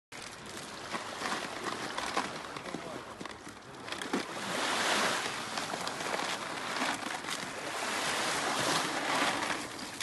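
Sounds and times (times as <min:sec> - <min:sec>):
gentle surf: 0:00.2 - 0:10.0.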